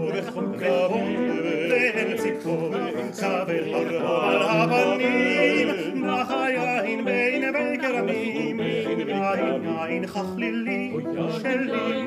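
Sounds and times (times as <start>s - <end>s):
men singing in harmony: 0.0s - 12.0s.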